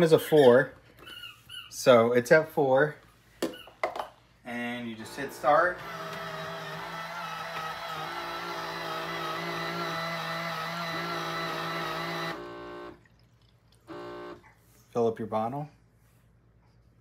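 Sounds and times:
formula maker whirring hum: 4.8s - 13.2s, 13.8s - 14.4s.

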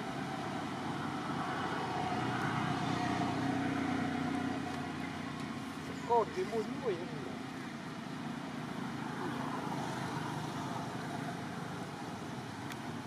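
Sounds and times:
outdoor background rumble and hiss: 0.0s - 13.0s.

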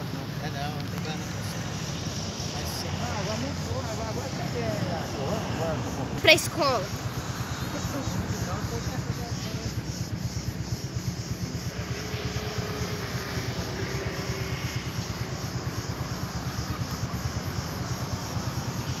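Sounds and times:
low engine rumble: 0.0s - 19.0s.

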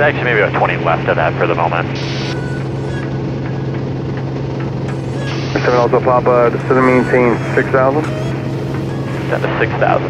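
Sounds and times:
propeller plane engine drone: 0.0s - 10.0s.

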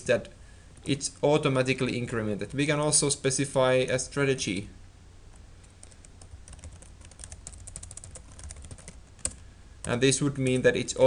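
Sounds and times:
keyboard typing clicks: 5.7s - 9.4s.

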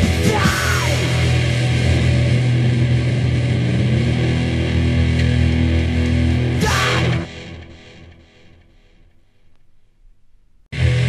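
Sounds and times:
distorted guitars droning chord: 0.0s - 9.6s, 10.7s - 11.0s.

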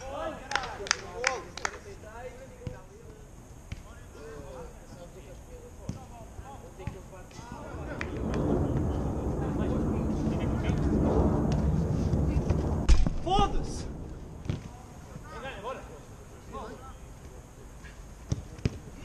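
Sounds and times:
loud rumbling noise: 7.5s - 15.4s
sharp thud: 7.8s - 14.8s.

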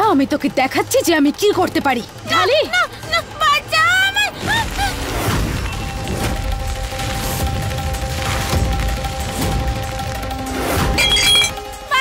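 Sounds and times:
dramatic music drone: 0.0s - 12.0s
glass jar smashing: 11.0s - 11.6s.

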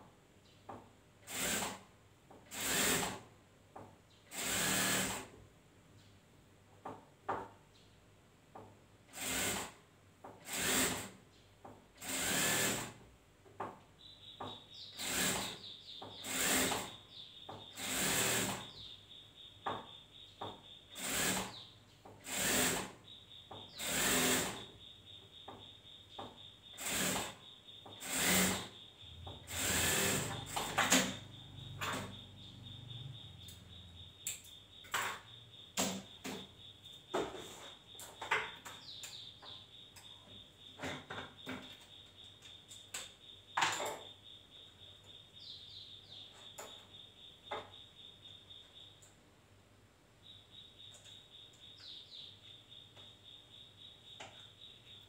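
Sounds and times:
industrial sewing machine stitching: 1.3s - 1.8s, 2.5s - 3.2s, 4.3s - 5.3s, 10.5s - 11.1s, 12.0s - 13.0s, 15.0s - 15.6s, 16.2s - 16.9s, 17.8s - 18.7s, 21.0s - 21.6s, 22.2s - 23.0s, 23.8s - 24.6s, 26.8s - 27.4s, 28.0s - 28.7s, 29.5s - 31.1s.

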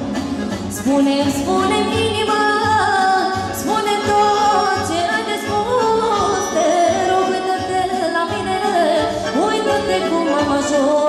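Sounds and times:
accordion: 0.0s - 11.0s
woman singing into a microphone: 0.7s - 11.0s.

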